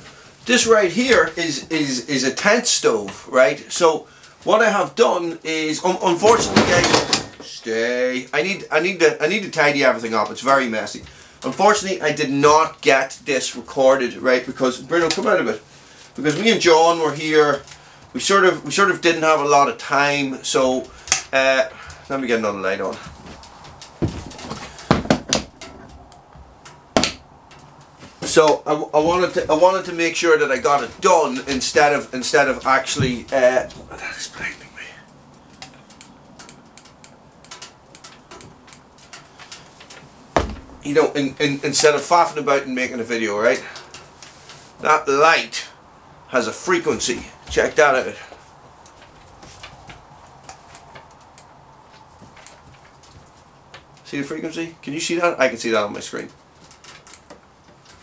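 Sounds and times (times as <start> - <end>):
faint small clicks and ticks: 34.5 - 40.1, 55.9 - 58.0.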